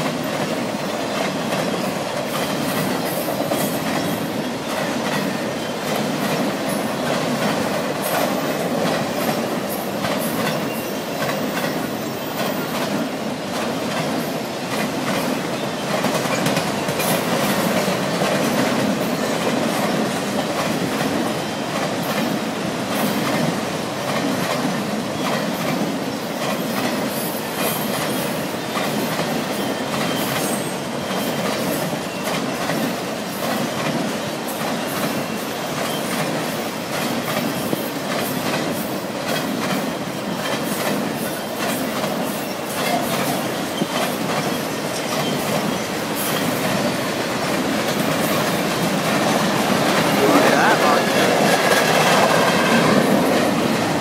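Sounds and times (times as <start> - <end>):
train wheels rumbling on rail: 0.0 - 54.0
wheels clacking over rail joints: 0.0 - 54.0.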